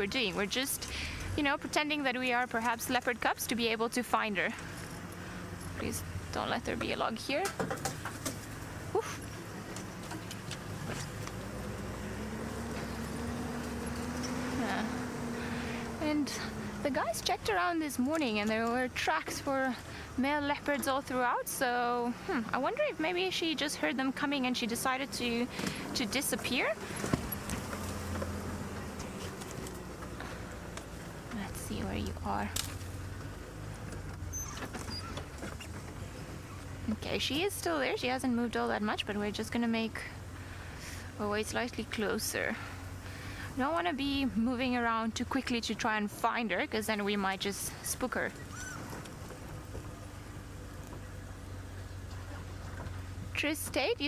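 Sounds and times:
vehicle engine running: 0:00.0 - 0:54.0.

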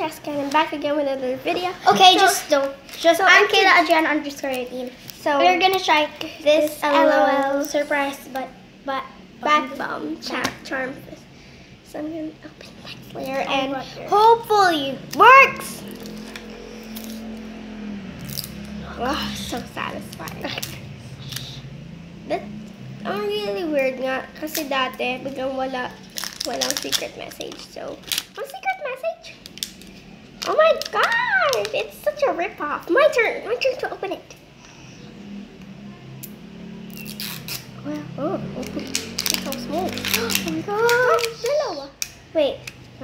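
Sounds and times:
steady low hum: 0:00.0 - 0:43.0.

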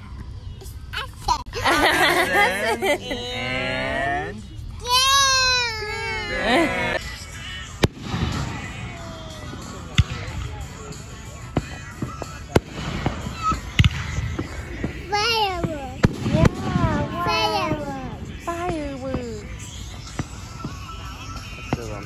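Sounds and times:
child's high voice: 0:00.7 - 0:01.6, 0:04.8 - 0:06.6, 0:15.1 - 0:18.2
fireworks crackling: 0:04.4 - 0:22.0
fireworks bangs: 0:07.7 - 0:22.0.

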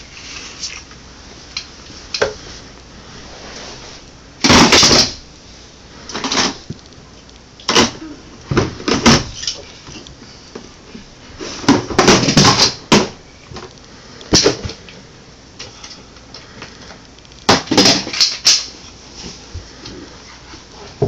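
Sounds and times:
plastic toys clattering: 0:11.6 - 0:14.8, 0:17.4 - 0:18.7.

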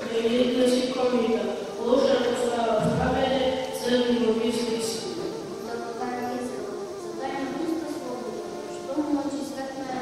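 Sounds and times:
child reciting into microphone: 0:00.0 - 0:10.0
music playing: 0:00.0 - 0:10.0.

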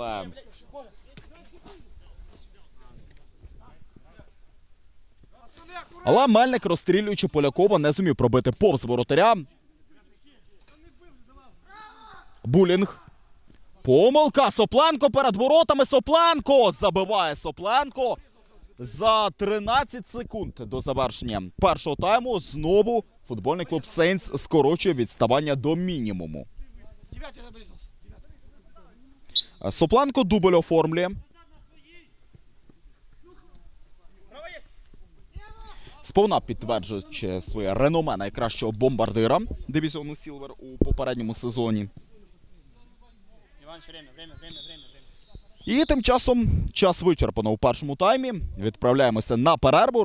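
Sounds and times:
open-air background noise: 0:00.0 - 0:50.0
faint shouts of voices: 0:11.3 - 0:13.2, 0:33.2 - 0:36.0.

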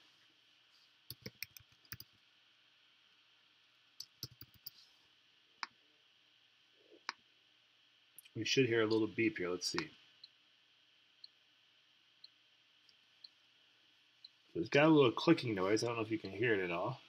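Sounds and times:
keyboard typing: 0:01.1 - 0:02.1, 0:04.0 - 0:04.7
mouse clicks: 0:01.1 - 0:02.1, 0:04.0 - 0:04.8.

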